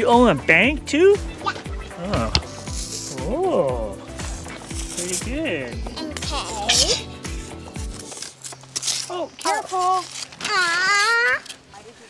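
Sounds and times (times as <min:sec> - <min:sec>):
child making vocal sounds: 0:06.0 - 0:07.2, 0:10.4 - 0:11.5.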